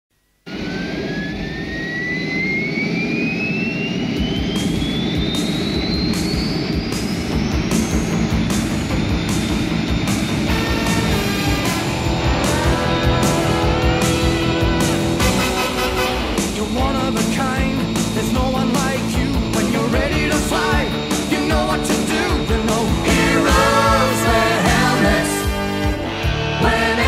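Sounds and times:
jet engine spooling up: 0.5s - 27.0s
music: 4.2s - 27.0s.

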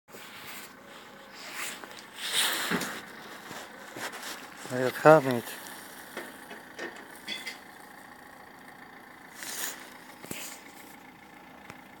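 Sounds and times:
soft rustles: 0.1s - 7.3s, 9.3s - 11.1s.

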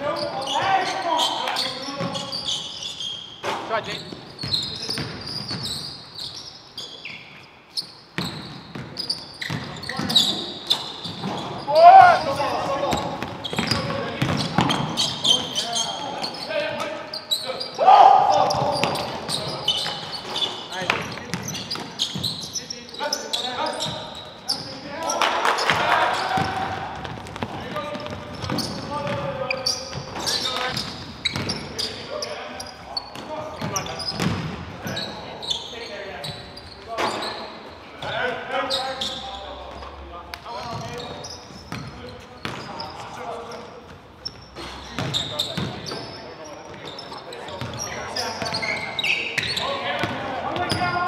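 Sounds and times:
players calling out: 8.4s - 51.0s
basketball bouncing on hardwood: 12.9s - 14.8s.

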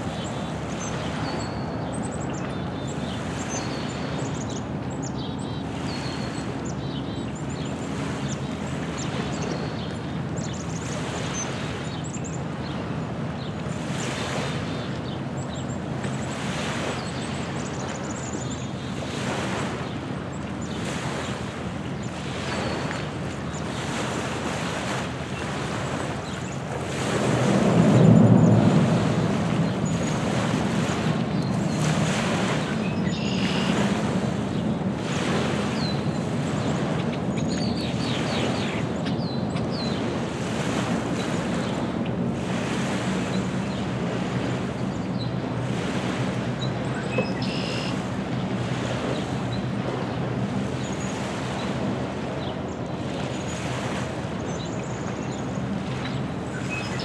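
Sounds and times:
wind on microphone: 18.9s - 54.4s
waves lapping on pebbly shore: 20.7s - 44.6s, 45.6s - 57.0s
low rumbling drone: 26.8s - 34.6s.

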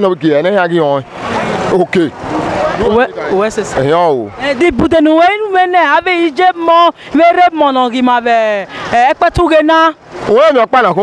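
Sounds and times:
motor vehicle passing close by: 0.5s - 4.6s.

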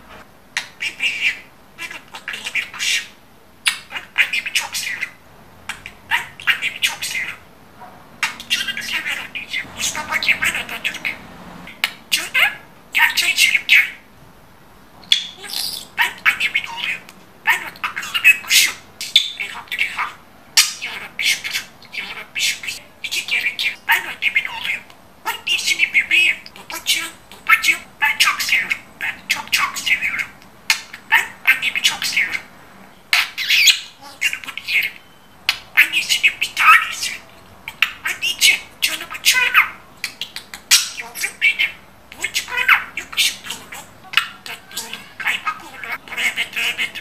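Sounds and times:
budgerigar chattering and warbling: 0.6s - 7.4s, 8.2s - 14.0s, 15.1s - 32.5s, 33.1s - 47.0s.

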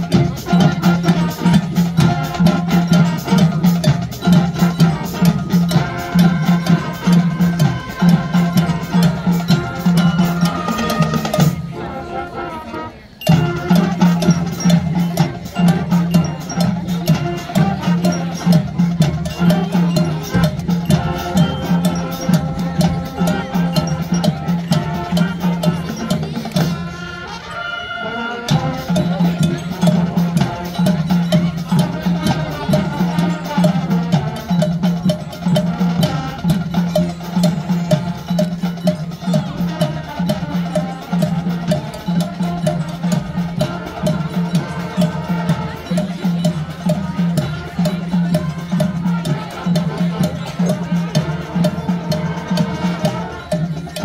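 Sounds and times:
brass and woodwinds: 0.0s - 54.0s
marching drums and percussion: 0.0s - 54.0s.

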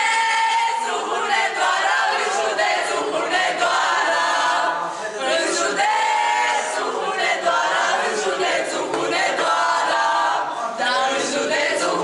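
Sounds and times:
group singing unaccompanied: 0.0s - 12.0s.

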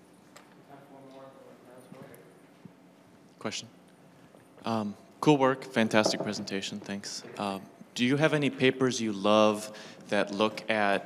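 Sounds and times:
small knocks: 6.0s - 6.5s.

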